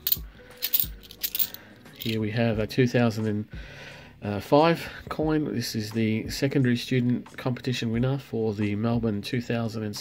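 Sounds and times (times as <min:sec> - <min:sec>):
coins clinking: 0:00.0 - 0:02.2.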